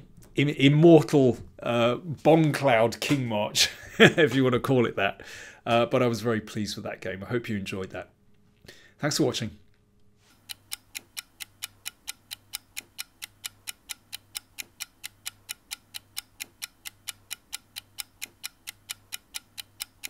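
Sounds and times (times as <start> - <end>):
clock ticking: 10.3 - 20.0.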